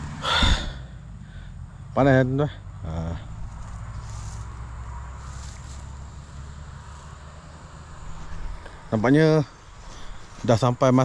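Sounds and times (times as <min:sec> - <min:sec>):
faint rustling: 0:03.3 - 0:07.2.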